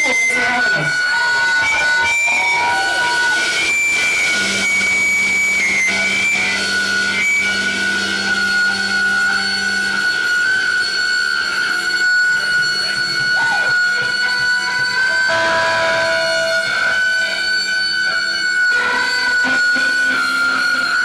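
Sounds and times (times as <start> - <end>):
bending guitar note: 0.0 - 21.0
electric guitar feedback ringing: 0.0 - 21.0
lower steady note: 0.0 - 21.0.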